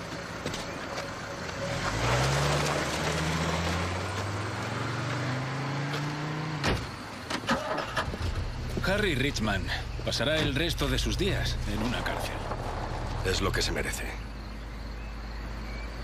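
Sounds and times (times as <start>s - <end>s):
car engine pulling away: 0.0s - 16.0s.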